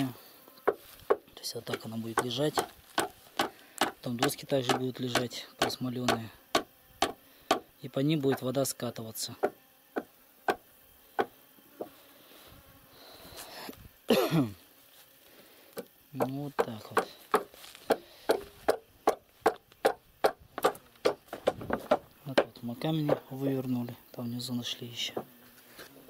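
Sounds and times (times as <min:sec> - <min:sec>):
sharp knocks: 0:00.7 - 0:07.7, 0:16.2 - 0:23.3.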